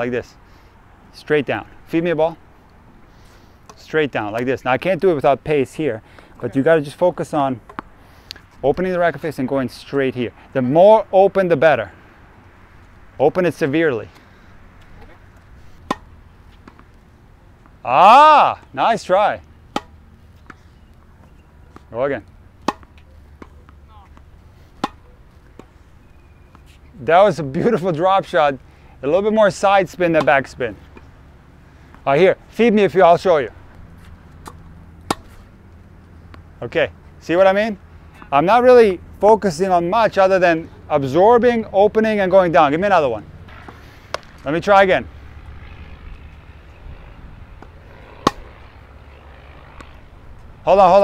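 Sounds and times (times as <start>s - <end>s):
outdoor background noise: 0.0s - 51.0s
racket hitting tennis ball: 7.6s - 8.9s, 14.7s - 17.0s, 19.6s - 26.9s, 29.9s - 31.2s, 33.7s - 35.6s, 43.5s - 44.4s, 47.6s - 48.6s.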